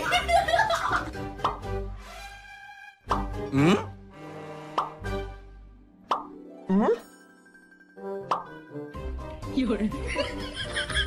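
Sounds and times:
light music: 0:00.0 - 0:11.0
cartoon plop sound effects: 0:06.1 - 0:06.4, 0:08.2 - 0:08.6.

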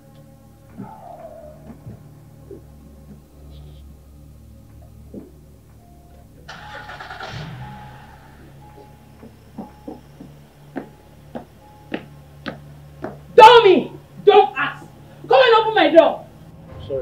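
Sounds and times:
background music: 0:00.0 - 0:17.0
car engine cranking and starting: 0:00.0 - 0:17.0.

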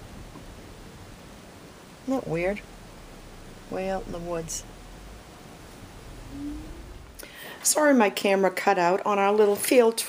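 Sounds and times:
low rumble: 0:00.0 - 0:07.4
faint hiss: 0:00.0 - 0:08.0.

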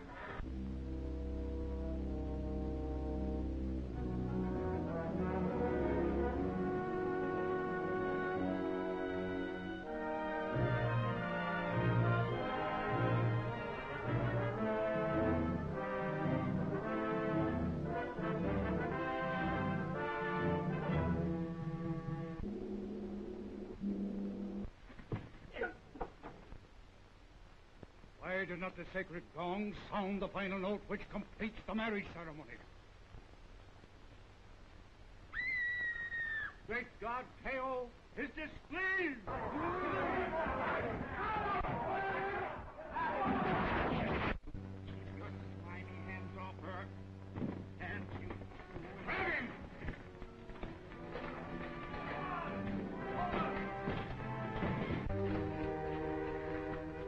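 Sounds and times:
dramatic orchestral music with brass: 0:00.9 - 0:22.5, 0:48.9 - 0:57.0
woman screaming: 0:35.3 - 0:36.6.

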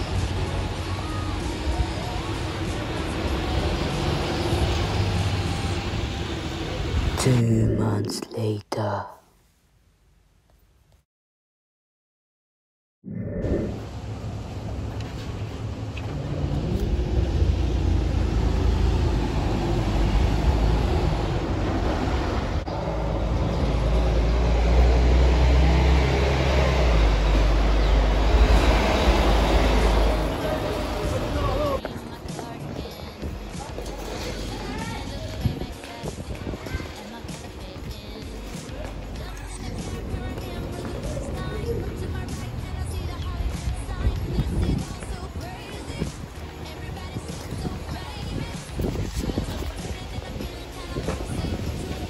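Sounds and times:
passing vehicles: 0:00.0 - 0:07.2, 0:13.6 - 0:52.0
street traffic: 0:00.0 - 0:07.7, 0:13.8 - 0:52.0
bus engines rumbling: 0:00.0 - 0:07.9, 0:13.8 - 0:52.0.

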